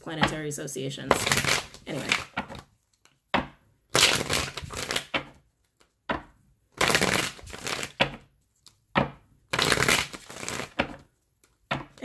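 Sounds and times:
cards being shuffled: 0:01.1 - 0:12.0.

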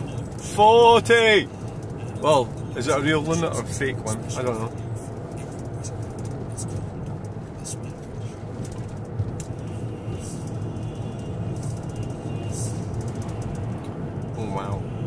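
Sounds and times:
passing cars hissing: 0:00.0 - 0:14.3
car road and engine hum: 0:00.0 - 0:15.0.

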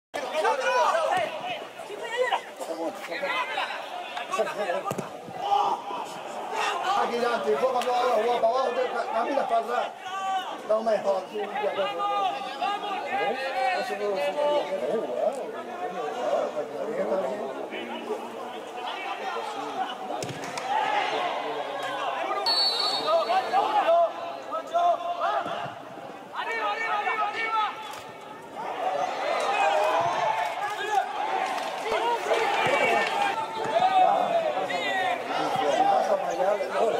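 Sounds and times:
people calling out and chattering: 0:00.1 - 0:36.9.

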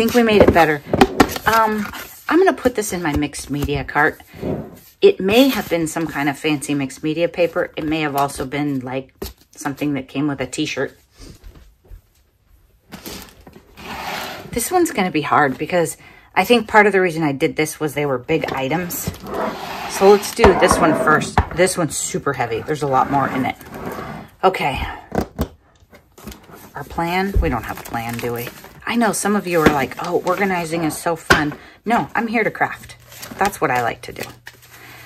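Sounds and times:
paper envelopes rustling: 0:26.1 - 0:30.7.

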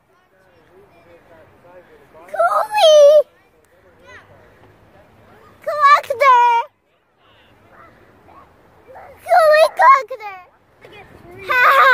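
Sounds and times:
faint distant calls: 0:00.0 - 0:11.9.

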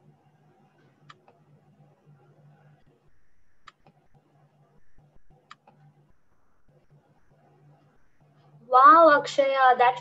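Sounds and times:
low hum: 0:00.0 - 0:08.8.

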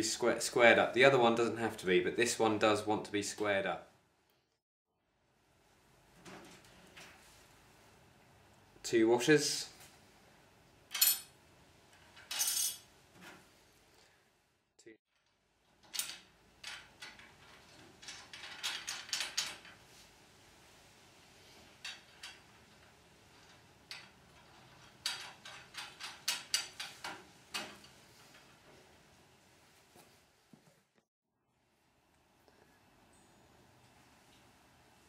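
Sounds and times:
metal hardware clinking on metal: 0:23.4 - 0:27.9.

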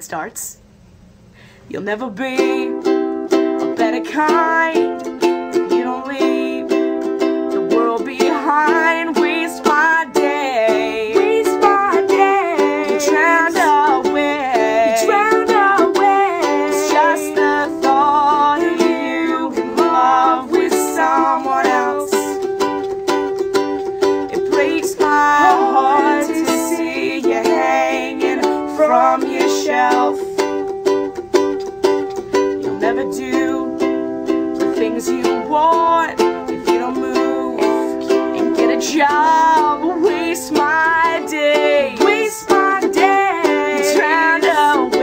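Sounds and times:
woman singing: 0:01.7 - 0:22.8, 0:24.2 - 0:30.7, 0:32.5 - 0:45.0
ukulele strumming: 0:02.1 - 0:45.0.

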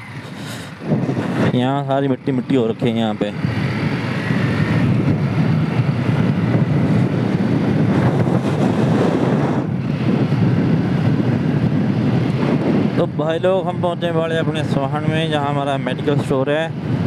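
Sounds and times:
motorcycle engine running: 0:00.0 - 0:17.0
wind on microphone: 0:00.0 - 0:17.0.

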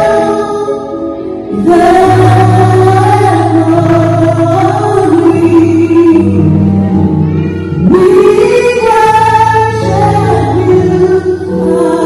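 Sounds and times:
woman singing gospel lead: 0:00.0 - 0:07.0, 0:07.8 - 0:12.0.

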